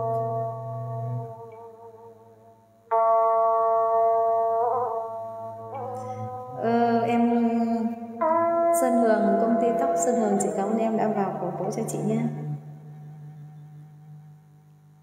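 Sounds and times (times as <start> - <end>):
instrumental backing track: 0.0 - 14.9.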